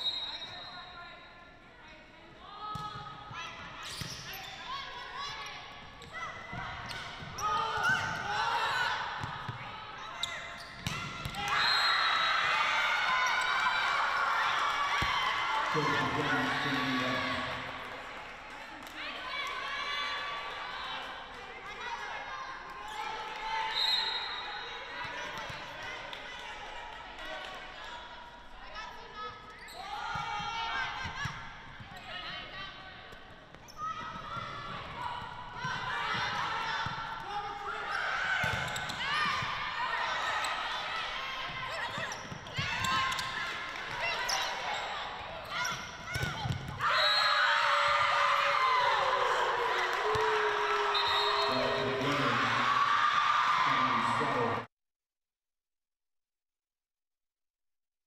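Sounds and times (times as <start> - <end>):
shouting and cheering: 11.3 - 18.2, 18.8 - 27.7, 33.8 - 54.7
players shouting calls: 15.6 - 17.7, 35.6 - 54.7.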